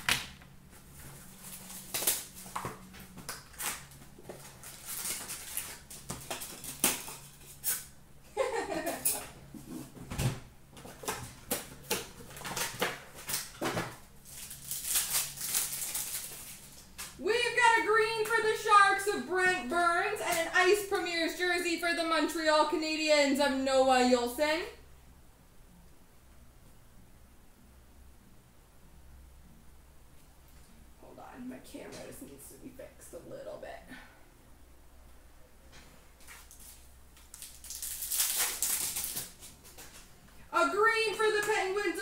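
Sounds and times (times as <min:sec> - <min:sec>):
plastic wrap crinkling and tearing: 0:00.9 - 0:07.9, 0:11.0 - 0:17.2, 0:36.2 - 0:40.1
person talking: 0:17.2 - 0:24.8, 0:40.5 - 0:42.0.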